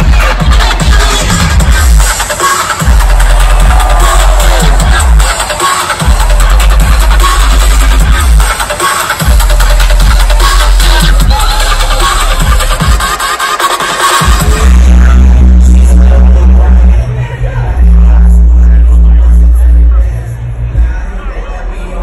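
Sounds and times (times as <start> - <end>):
electronic dance music with heavy bass: 0.0 - 22.0.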